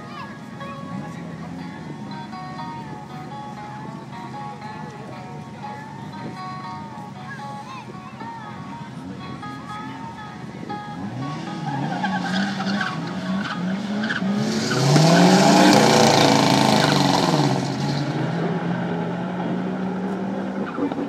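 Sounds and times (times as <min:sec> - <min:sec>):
tyre and engine rush: 0:00.0 - 0:21.0
racing car engines revving: 0:08.6 - 0:21.0.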